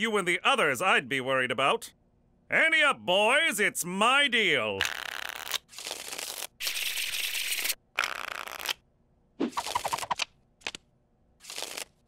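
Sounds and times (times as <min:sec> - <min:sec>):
playing cards riffling: 0:04.9 - 0:06.5, 0:09.5 - 0:10.8, 0:11.4 - 0:12.0.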